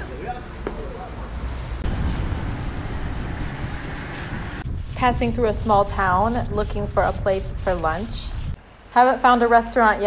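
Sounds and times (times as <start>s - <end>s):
steady rushing noise: 0.6s - 9.0s
wind rumbling on microphone: 1.3s - 8.6s.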